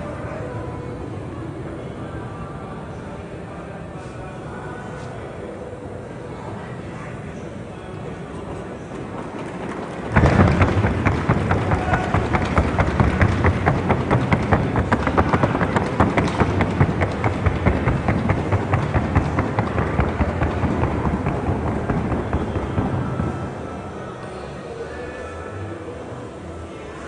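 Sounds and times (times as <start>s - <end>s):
hoofbeats on a wooden board: 9.0s - 23.8s.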